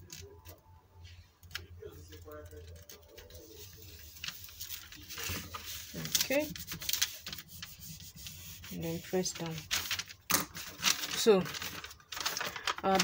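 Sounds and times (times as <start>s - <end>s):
paper and plastic crinkling: 0.0s - 13.0s
rubbing sound: 2.9s - 12.3s.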